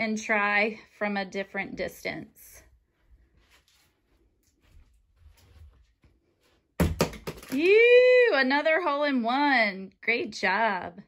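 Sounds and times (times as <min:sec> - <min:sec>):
faint scuffs: 0:02.9 - 0:06.8.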